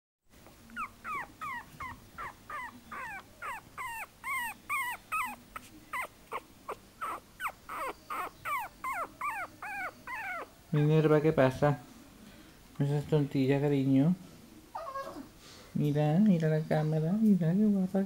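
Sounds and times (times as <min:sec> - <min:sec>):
puppy whimpering: 0:00.7 - 0:10.6, 0:14.7 - 0:15.3.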